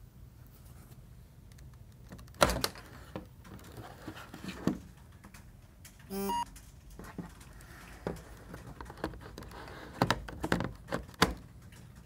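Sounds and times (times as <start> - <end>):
short electronic beep: 6.1 - 6.5
knocks and handling of plastic: 6.8 - 12.0.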